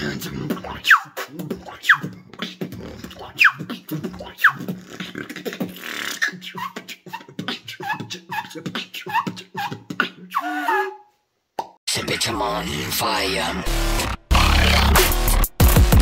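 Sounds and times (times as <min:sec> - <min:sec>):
beatbox laser whistles: 0:00.8 - 0:02.6, 0:03.2 - 0:04.8.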